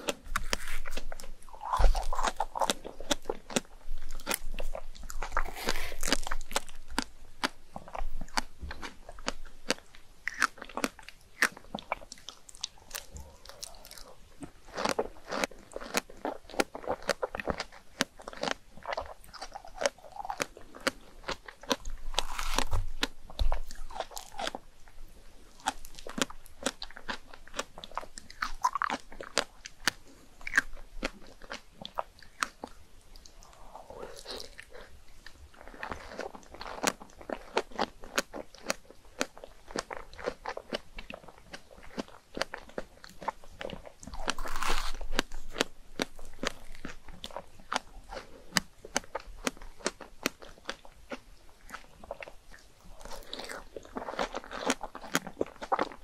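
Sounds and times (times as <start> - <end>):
wet mouth clicks and chewing: 0.0 - 56.0.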